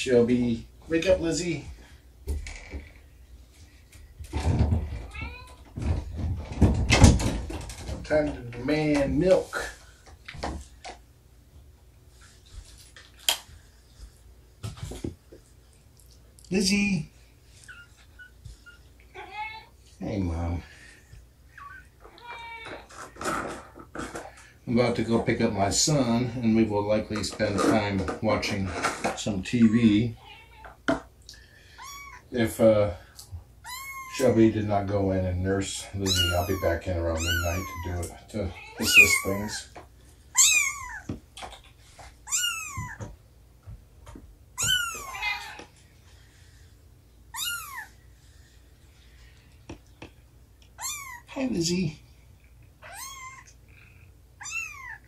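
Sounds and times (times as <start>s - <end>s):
cat meowing: 5.0s - 5.6s, 21.6s - 22.9s, 31.8s - 32.2s, 33.6s - 34.2s, 36.0s - 39.6s, 40.3s - 41.1s, 42.2s - 43.1s, 44.6s - 45.6s, 47.3s - 48.0s, 50.8s - 51.3s, 52.8s - 55.0s
cat chirp: 31.8s - 32.2s, 33.6s - 34.2s, 36.1s - 38.0s, 40.3s - 41.1s, 42.2s - 43.0s, 44.6s - 45.6s, 47.3s - 48.0s, 50.8s - 51.3s, 52.8s - 55.0s.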